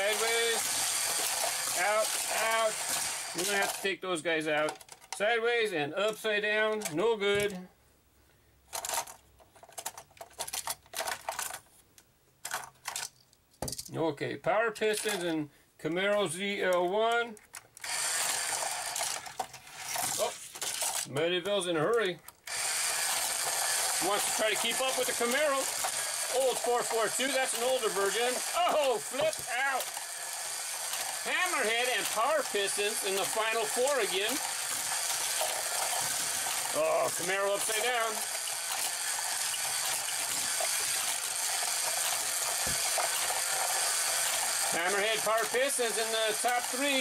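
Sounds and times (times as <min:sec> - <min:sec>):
motorized toy track whirring: 0:00.0 - 0:04.0, 0:17.8 - 0:21.1, 0:22.4 - 0:47.0
toy cars rattling on plastic track: 0:00.0 - 0:05.3, 0:08.7 - 0:11.6, 0:12.4 - 0:13.9, 0:14.8 - 0:15.2, 0:16.1 - 0:47.0.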